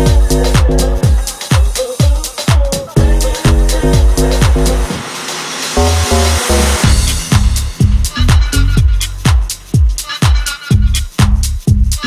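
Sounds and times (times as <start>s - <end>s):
chopped bass: 0.0s - 1.4s, 2.7s - 5.1s, 5.7s - 10.0s, 10.7s - 12.0s
kick drum: 0.0s - 5.1s, 5.9s - 12.0s
chord stabs: 3.0s - 9.6s
hissing noise sweep: 3.0s - 9.7s.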